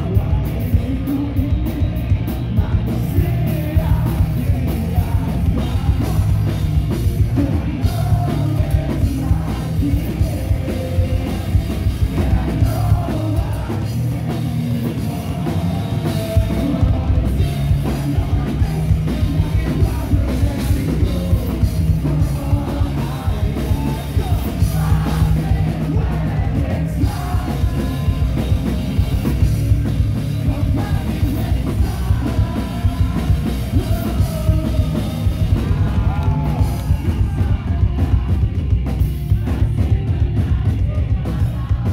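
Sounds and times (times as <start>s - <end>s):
bass: 0.0s - 41.9s
drum kit: 0.0s - 41.9s
electric guitar: 0.0s - 41.9s
punk rock band playing: 0.0s - 41.9s.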